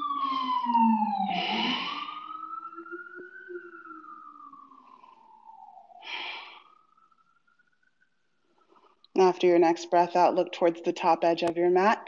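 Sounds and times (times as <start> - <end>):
emergency siren wailing: 0.0 - 10.3.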